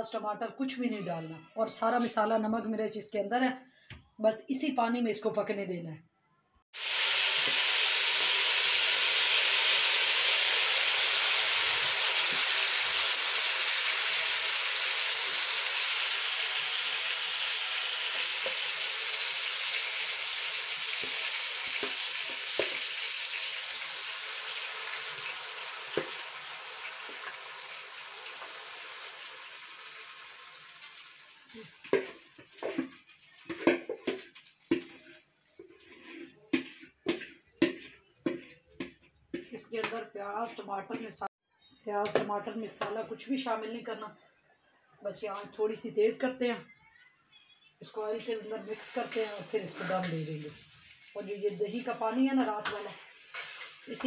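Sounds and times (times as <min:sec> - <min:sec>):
chicken sizzling in hot oil: 0:06.8 - 0:39.9, 0:47.9 - 0:54.0
knocks and scrapes on metal pan: 0:31.8 - 0:41.2, 0:52.6 - 0:54.0.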